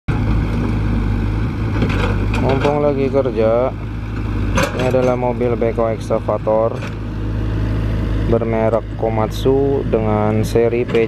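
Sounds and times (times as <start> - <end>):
excavator diesel engine running: 0.1 - 11.0.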